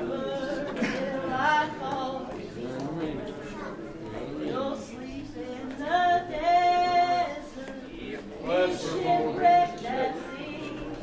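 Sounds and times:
woman singing: 0.0s - 3.4s, 4.1s - 11.0s.

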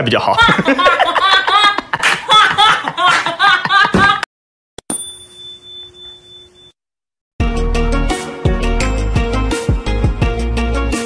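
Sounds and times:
bright ding chime: 4.8s - 6.7s.

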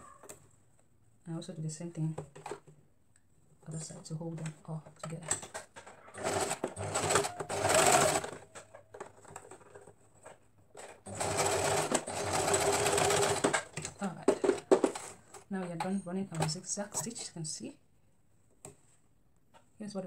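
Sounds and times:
sewing machine stitching: 5.4s - 8.7s, 10.8s - 15.4s.

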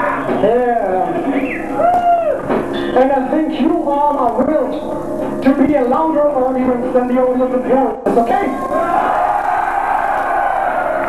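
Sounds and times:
concert crowd: 8.1s - 11.0s.

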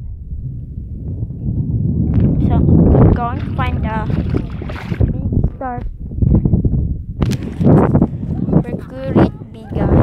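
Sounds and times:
wind buffeting the microphone: 0.0s - 10.0s.

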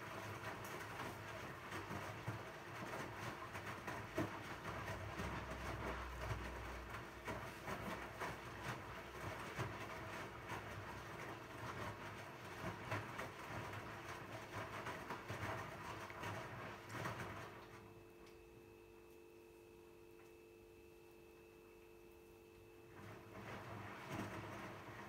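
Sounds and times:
washing machine drum tumbling: 0.0s - 17.7s, 22.9s - 25.0s
water sloshing and small knocks: 0.0s - 18.4s, 22.8s - 25.0s.

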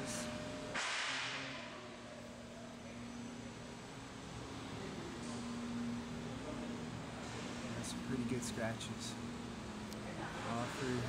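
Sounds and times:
shop background hum: 0.0s - 11.0s.

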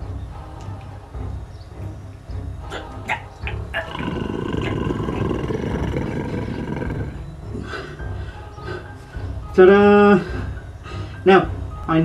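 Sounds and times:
rough werewolf roar: 3.7s - 7.3s.

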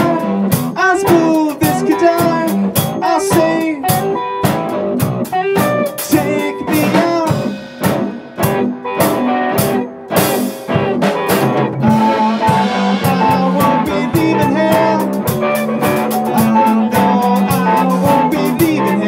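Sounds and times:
drum strikes: 0.0s - 19.0s
rock band music: 0.0s - 19.0s.

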